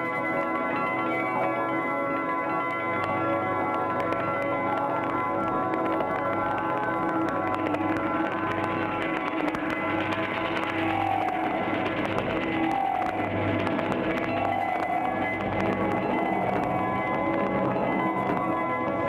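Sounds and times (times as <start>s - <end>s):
drone tones: 6.7s - 19.0s
bell-like notes: 9.8s - 19.0s.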